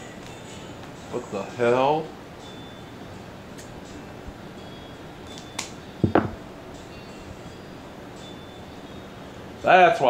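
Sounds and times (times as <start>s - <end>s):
double knock: 6.0s - 6.5s
handling noise: 6.0s - 6.6s.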